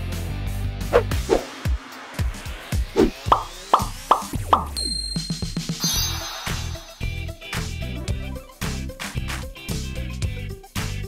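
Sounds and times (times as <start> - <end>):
cartoon plop sound effects: 3.0 - 4.9
upbeat jingle music: 3.3 - 7.5
high bright chime: 4.8 - 7.1.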